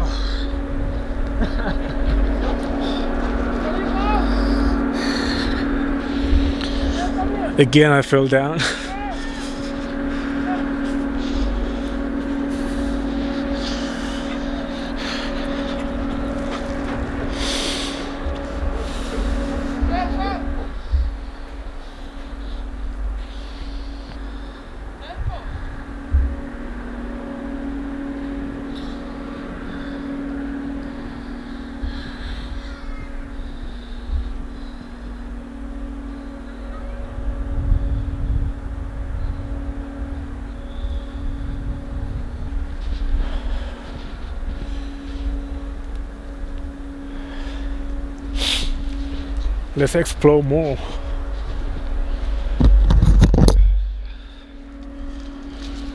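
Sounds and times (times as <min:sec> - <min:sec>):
steady low hum: 0:00.0 - 0:55.9
wind buffeting microphone: 0:00.0 - 0:55.9.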